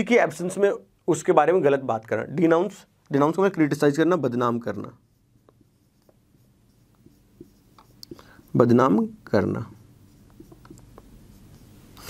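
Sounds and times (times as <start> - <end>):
marker scratching on whiteboard: 3.8 - 12.0
light marker taps: 5.4 - 8.3, 10.1 - 11.7.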